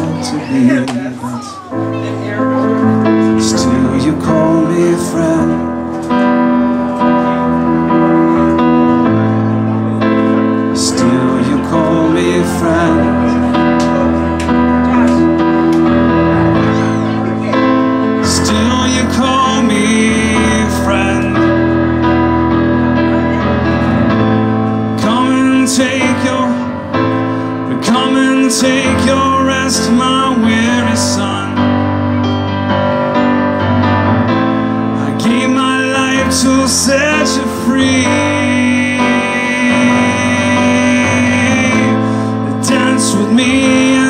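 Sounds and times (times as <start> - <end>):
man singing: 0.0 - 1.7, 2.3 - 22.4, 24.8 - 32.2, 34.6 - 44.0
electronic keyboard piano chords: 0.0 - 44.0.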